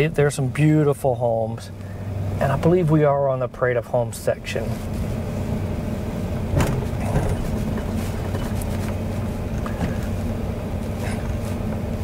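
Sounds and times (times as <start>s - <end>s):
truck engine and tyres humming: 0.0s - 12.0s.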